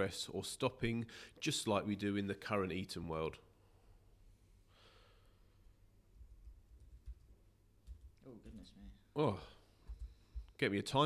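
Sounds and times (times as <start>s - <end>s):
faint breath: 1.1s - 1.4s, 3.6s - 5.7s.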